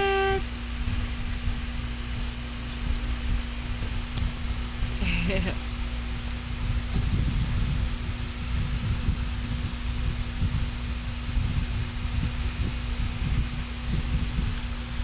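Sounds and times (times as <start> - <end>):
low constant hum: 0.0 - 15.0.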